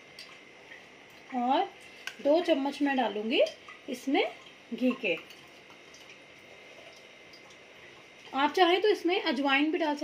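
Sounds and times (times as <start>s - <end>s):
woman speaking: 1.3s - 5.3s, 8.3s - 10.0s.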